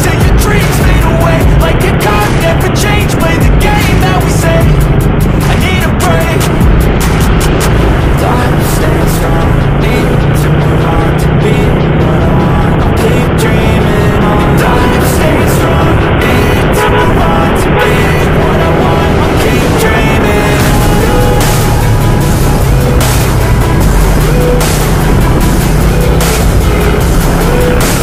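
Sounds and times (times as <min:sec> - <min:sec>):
motorcycle riding in traffic: 0:00.0 - 0:28.0
music with steady beat: 0:00.0 - 0:28.0.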